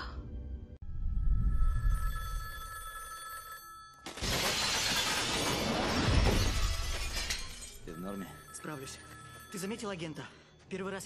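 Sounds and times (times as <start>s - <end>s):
telephone ringing: 1.9s - 4.1s, 7.8s - 10.6s.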